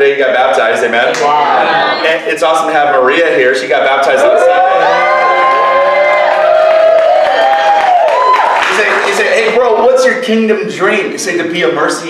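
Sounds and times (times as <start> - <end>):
crowd cheering and whooping: 0.9 - 2.2, 4.1 - 9.4.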